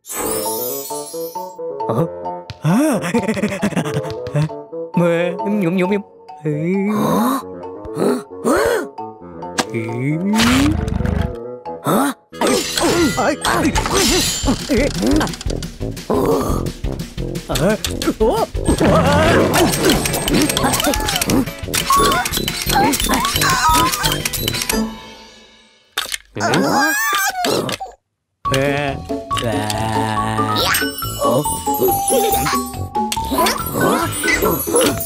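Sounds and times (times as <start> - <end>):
light children's music: 0.1 - 10.3, 11.2 - 25.6, 28.4 - 35.0
mousetraps snapping: 18.7 - 24.8
cartoon character vocal sounds: 20.6 - 24.1, 26.4 - 28.0, 29.4 - 32.7.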